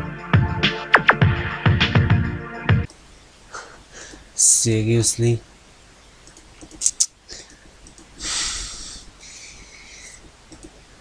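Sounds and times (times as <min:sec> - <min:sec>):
mouse clicks: 0:06.2 - 0:08.1, 0:10.2 - 0:10.8
snort-like exhale: 0:08.2 - 0:10.2.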